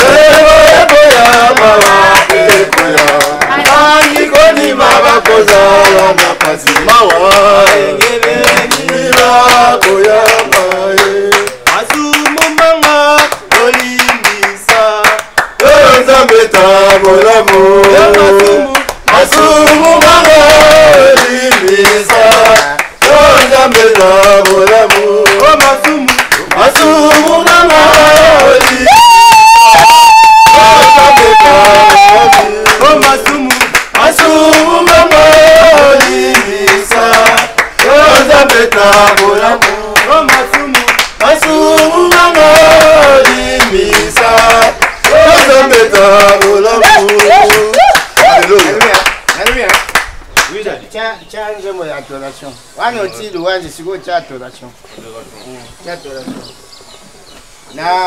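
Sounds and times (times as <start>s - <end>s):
group of people singing: 0.0s - 48.8s
hands clapping in rhythm: 0.0s - 50.6s.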